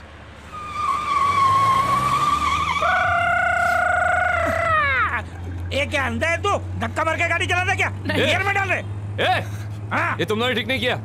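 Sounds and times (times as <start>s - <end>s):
car tyres squealing: 0.4s - 5.6s.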